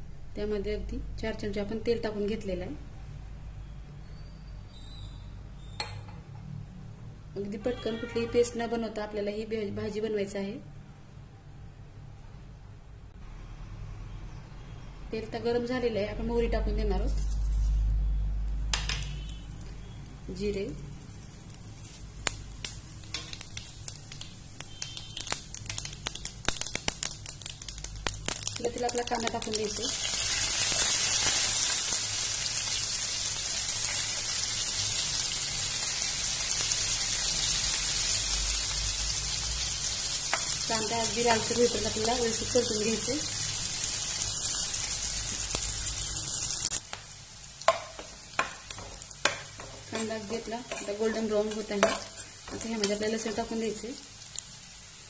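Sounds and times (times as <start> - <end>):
seeds crackling in hot oil: 16.9 - 55.0.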